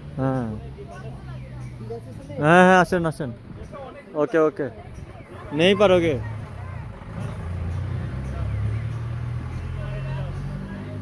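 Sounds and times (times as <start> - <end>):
faint voices: 0.2 - 11.0
engine running low hum: 4.8 - 11.0.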